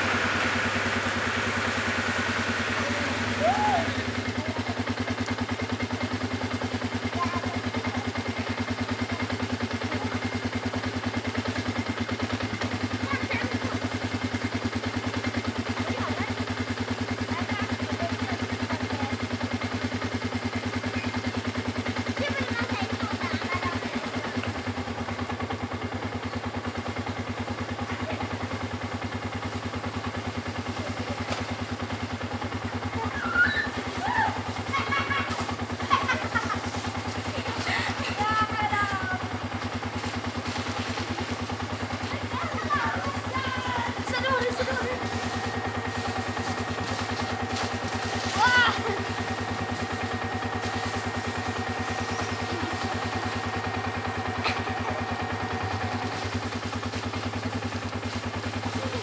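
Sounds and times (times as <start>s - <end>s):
steady low hum: 0.0s - 5.9s, 29.1s - 59.0s
children shouting: 3.3s - 4.1s, 33.0s - 35.0s.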